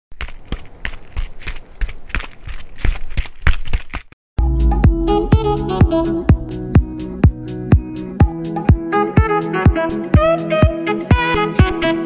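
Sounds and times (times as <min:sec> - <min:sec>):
running footsteps on a track: 0:00.1 - 0:04.1.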